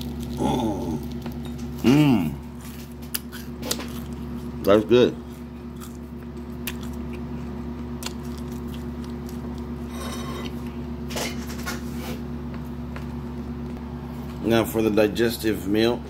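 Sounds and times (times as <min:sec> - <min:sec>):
cookie crunching while chewing: 0:00.0 - 0:11.8
steady low hum: 0:00.0 - 0:16.0
cookie on ceramic plate: 0:09.8 - 0:10.6.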